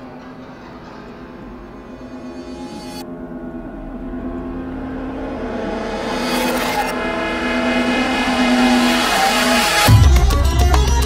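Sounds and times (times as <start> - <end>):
sustained synth chords: 0.0 - 11.0
rising noise sweep: 1.4 - 10.6
deep bass hit: 3.5 - 11.0.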